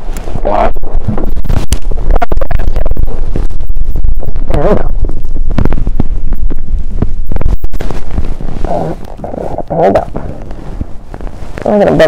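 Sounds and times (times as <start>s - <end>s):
clothing rubbing against microphone: 0.0s - 12.0s.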